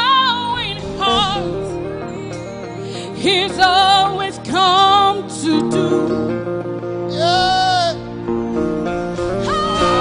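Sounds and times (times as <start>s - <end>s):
sustained instrumental chords: 0.0s - 10.0s.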